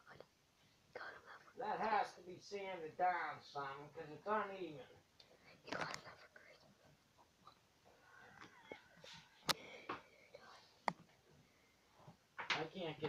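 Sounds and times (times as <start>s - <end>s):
faint whispered muttering: 0.9s - 1.6s, 5.3s - 10.9s.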